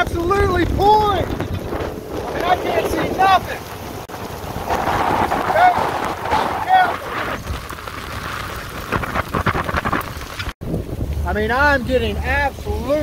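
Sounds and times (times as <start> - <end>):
heavy rain pouring: 0.0 - 13.0
wind noise on microphone: 0.0 - 13.0
man's voice: 2.3 - 3.6, 11.2 - 13.0.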